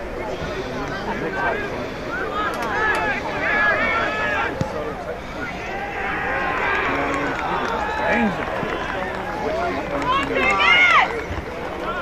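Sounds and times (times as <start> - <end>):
people shouting and calling: 1.0 - 4.6, 5.2 - 9.0.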